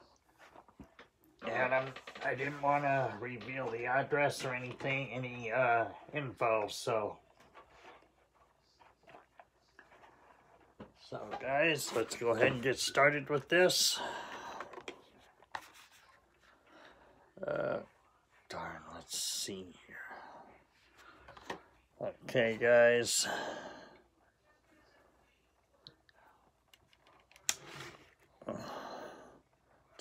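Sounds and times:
scratching and rubbing of handling: 0.0s - 13.8s, 14.5s - 19.5s, 24.5s - 28.4s
man breathing: 13.9s - 15.1s, 23.2s - 24.2s, 28.4s - 29.6s.

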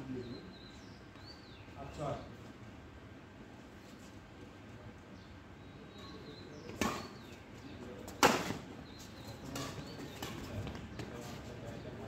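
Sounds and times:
rackets hitting shuttlecock: 6.7s - 7.2s, 8.1s - 8.6s.

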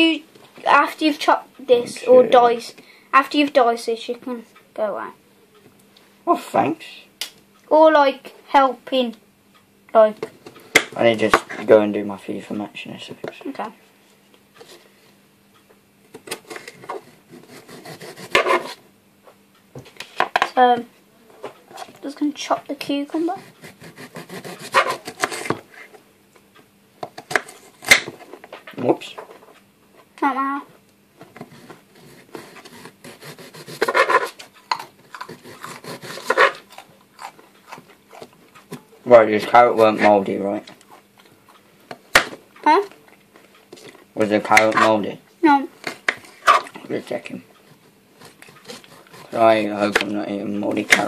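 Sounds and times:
knife cutting on plastic board: 16.1s - 18.8s, 23.3s - 25.8s, 31.4s - 38.3s, 47.7s - 50.1s
knives chopping on plastic board: 17.4s - 18.8s, 23.6s - 25.6s, 27.0s - 28.1s, 32.3s - 36.6s.

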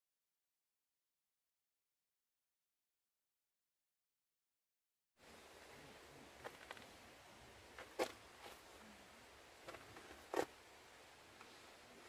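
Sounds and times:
faint steady hiss: 5.2s - 12.0s.

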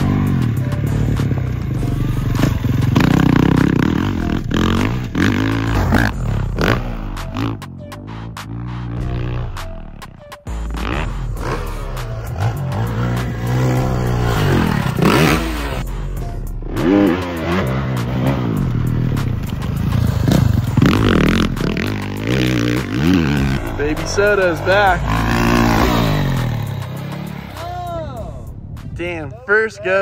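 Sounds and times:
dirt bike engines revving: 0.0s - 29.8s.

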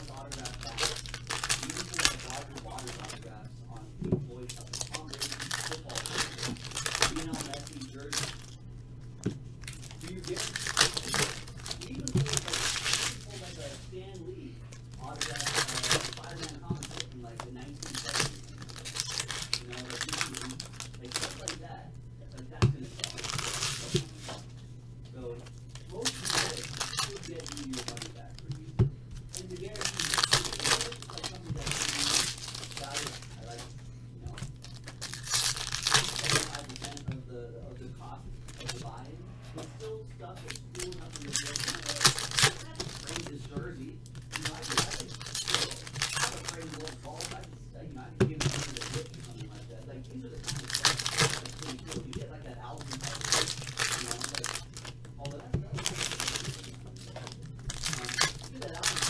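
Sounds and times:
foil wrappers crinkling and tearing: 0.0s - 8.6s, 9.6s - 24.4s, 25.2s - 33.7s, 34.3s - 37.1s, 37.8s - 59.0s
steady low hum: 0.0s - 59.0s.

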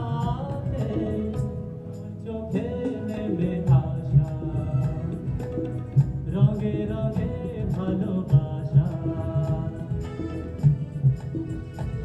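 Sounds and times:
steady low drum beat: 0.0s - 1.7s, 2.4s - 12.0s
live band melodic line: 0.0s - 12.0s.

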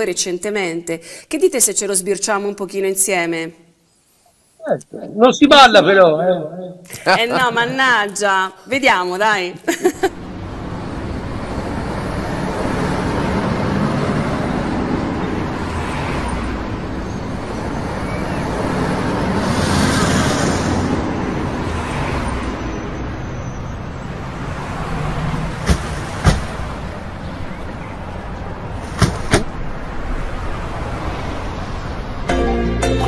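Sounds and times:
car engine and road rush: 10.2s - 32.3s.

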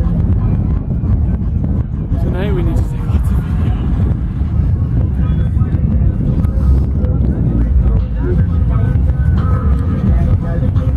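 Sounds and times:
faint music: 0.0s - 10.9s
vehicle engine low rumble: 0.0s - 10.9s.

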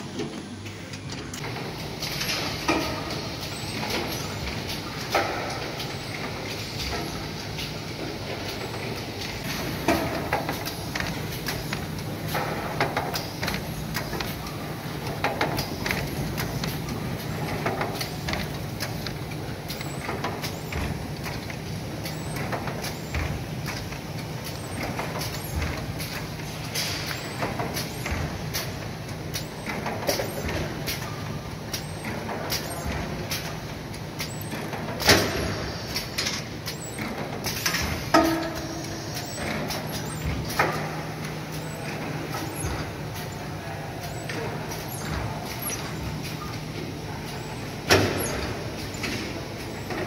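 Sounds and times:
low machine hum: 0.0s - 50.0s
clicks from moving parts: 0.2s - 43.4s, 44.0s - 50.0s.

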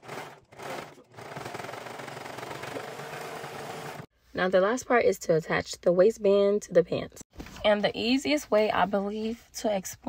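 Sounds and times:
serger stitching: 0.0s - 4.1s.

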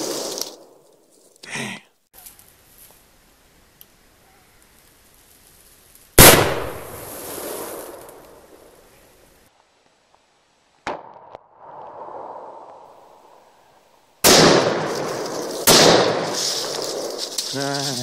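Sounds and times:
loud gunshot with echo: 6.2s - 7.0s, 14.2s - 15.0s, 15.6s - 16.4s.

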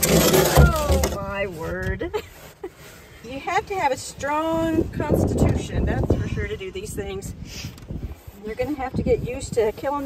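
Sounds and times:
woman speaking: 0.3s - 2.2s, 3.2s - 7.4s, 8.4s - 10.0s.

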